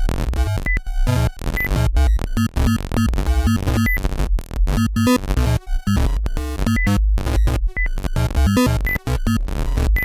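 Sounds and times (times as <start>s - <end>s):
harsh glitchy electronic music: 0.0s - 10.0s.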